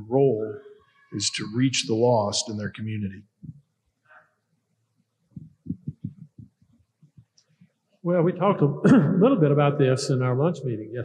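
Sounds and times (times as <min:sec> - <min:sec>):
microphone handling thumps: 0:05.4 - 0:06.6.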